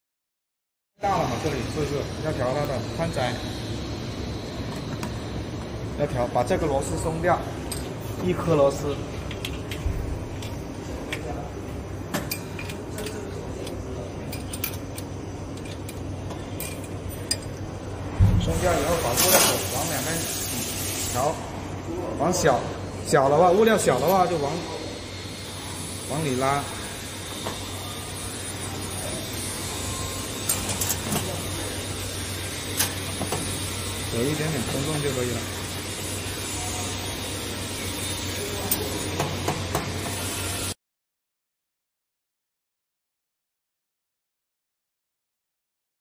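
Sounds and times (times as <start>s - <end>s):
steady low hum: 1.0s - 38.6s.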